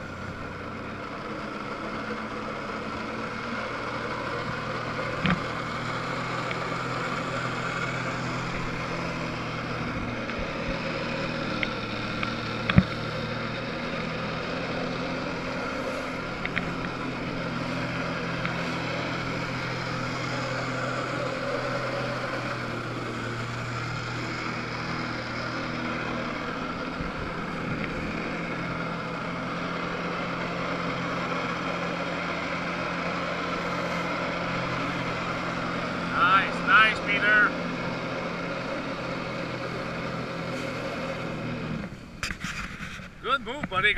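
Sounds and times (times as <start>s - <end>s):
jet ski engine running: 0.0s - 43.9s.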